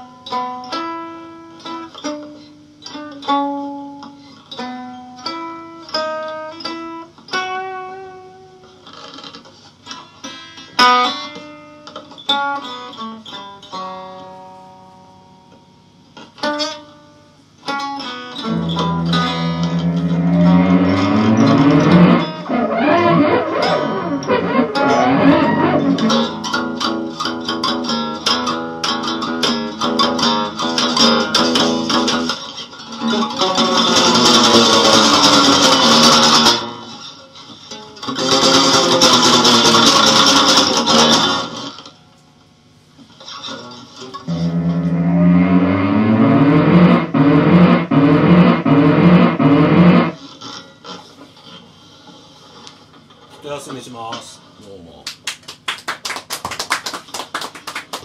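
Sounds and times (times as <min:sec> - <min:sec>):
electric guitar noise improvisation: 0:00.0 - 0:42.2, 0:43.0 - 0:53.2
harsh noisy guitar strumming: 0:17.7 - 0:41.9, 0:43.3 - 0:50.6.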